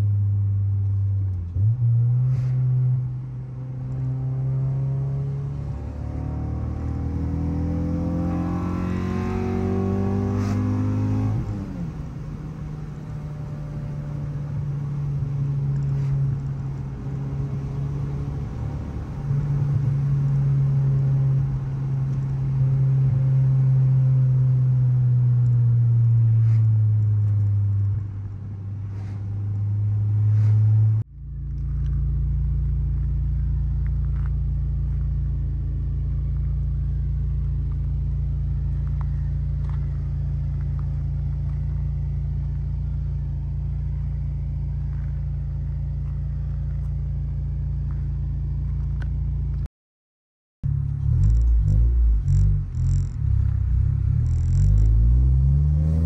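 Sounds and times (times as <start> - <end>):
car engine from inside cabin: 0.0 - 49.7, 50.7 - 56.0
exhaust idling: 11.8 - 49.6.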